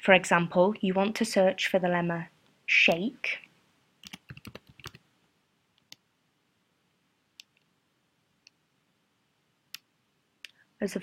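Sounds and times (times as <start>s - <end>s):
computer keyboard typing: 4.0s - 5.0s.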